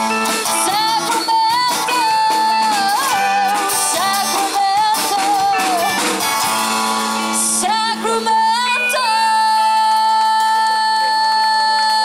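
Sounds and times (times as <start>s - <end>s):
woman singing a long high note: 7.6s - 12.0s.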